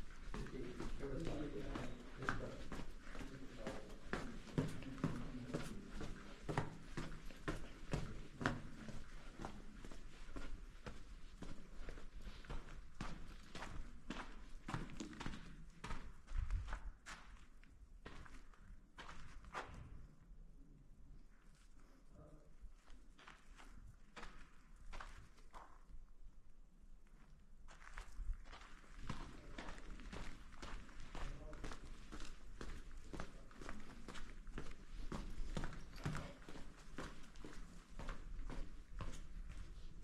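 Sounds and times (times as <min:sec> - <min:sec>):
footsteps walking in tunnel: 0:00.0 - 0:40.0.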